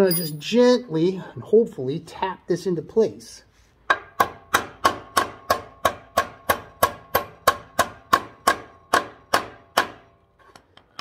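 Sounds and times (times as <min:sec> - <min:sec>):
hammer striking metal: 0:03.9 - 0:10.1.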